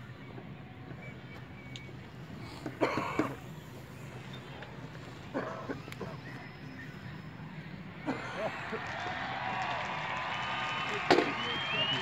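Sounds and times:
low steady murmur: 0.0 - 12.0.

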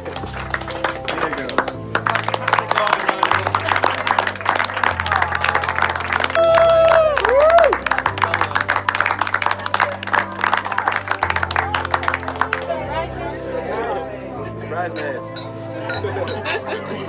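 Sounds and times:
people applauding: 0.0 - 13.3
music playing: 0.0 - 17.0.

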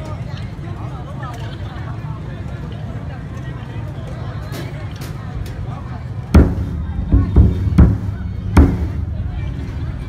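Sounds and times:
crowd chatter: 0.0 - 10.0
large barrel drum beats: 6.3 - 9.2.

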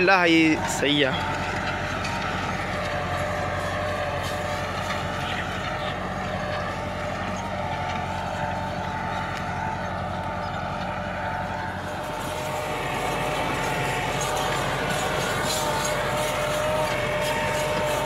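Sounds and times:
tractor diesel engine under load: 0.0 - 18.0.

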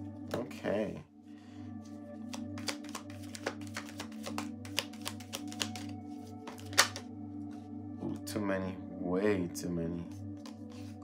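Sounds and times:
background music: 0.0 - 11.0
cards being shuffled: 2.2 - 7.1, 10.4 - 11.0.

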